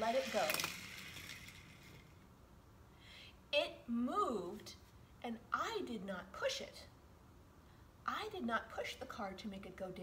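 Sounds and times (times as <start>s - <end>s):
toy car wheels rolling on wood: 0.0s - 2.2s.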